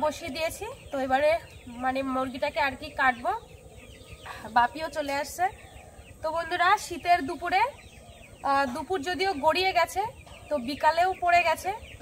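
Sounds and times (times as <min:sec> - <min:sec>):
woman talking in a high voice: 0:00.0 - 0:03.4, 0:08.4 - 0:12.0.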